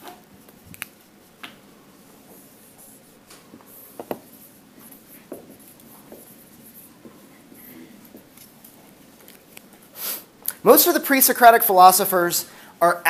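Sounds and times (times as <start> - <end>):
marker writing on whiteboard: 2.2 - 9.6.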